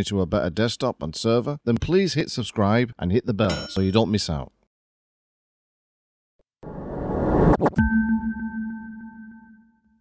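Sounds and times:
ringing electronic tone: 7.8s - 9.9s.

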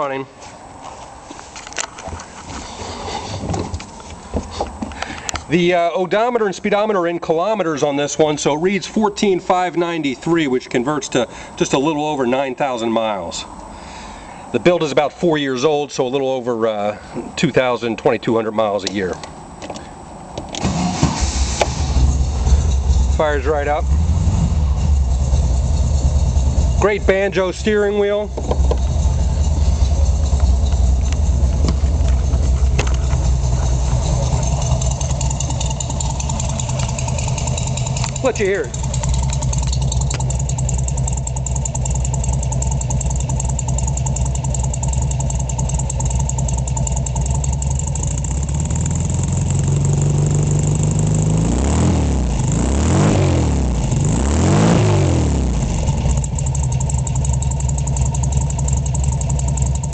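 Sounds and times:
car engine starting and rumbling: 1.6s - 59.9s.

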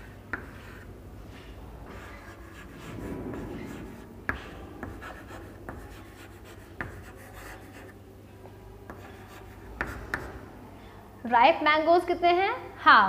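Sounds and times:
chalk tapping on board: 0.0s - 0.9s, 1.9s - 8.0s, 8.8s - 10.4s
chalk scratching on chalkboard: 0.0s - 8.0s, 8.8s - 10.4s.

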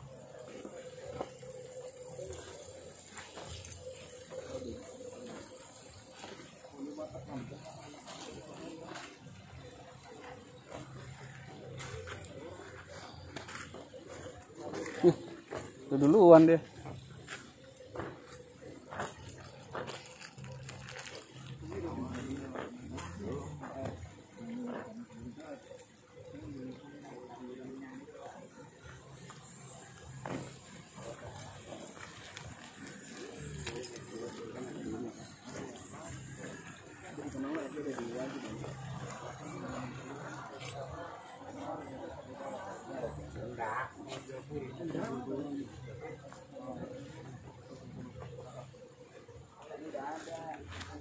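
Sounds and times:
indistinct background talk: 0.0s - 51.0s.

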